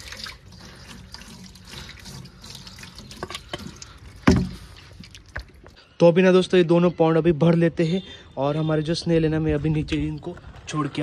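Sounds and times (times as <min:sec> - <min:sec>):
hose water splashing in box: 0:00.0 - 0:05.5.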